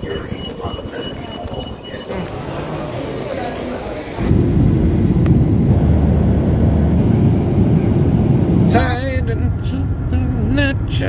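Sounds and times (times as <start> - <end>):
loud low rumble: 4.2 - 11.0.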